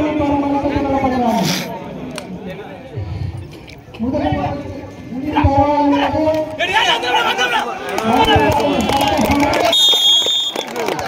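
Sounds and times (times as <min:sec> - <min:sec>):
many voices shouting: 0:06.6 - 0:09.0
referee's whistle blast: 0:09.7 - 0:10.7.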